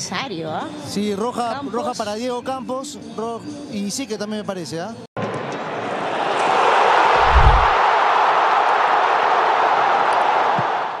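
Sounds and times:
deep boom: 7.2s - 7.8s
rushing noise: 7.2s - 7.8s.

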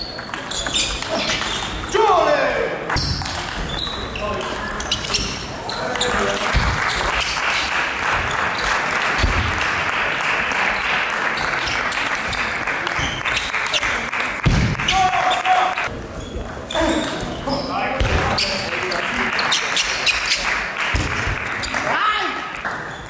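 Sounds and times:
table tennis balls clicking: 0.0s - 2.0s, 2.8s - 7.7s, 22.6s - 23.0s
murmur of voices: 0.0s - 22.7s.

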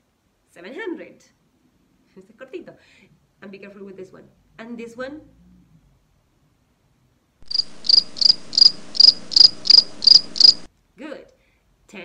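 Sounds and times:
cricket chirping: 7.4s - 10.7s.

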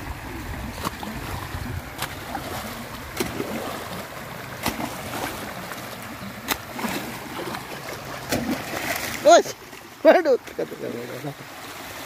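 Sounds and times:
floodwater running and splashing: 0.0s - 12.0s.

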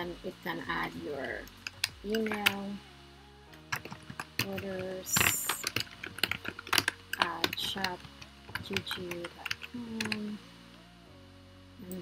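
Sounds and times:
computer keyboard key clicks: 3.7s - 10.2s.

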